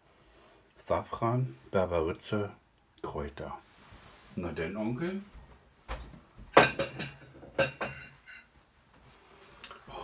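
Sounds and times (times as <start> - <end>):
crockery and cutlery clinking: 6.5 - 8.6.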